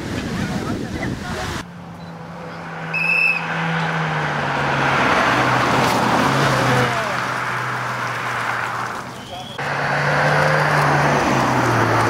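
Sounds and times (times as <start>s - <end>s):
rally car engine passing: 1.6s - 12.0s.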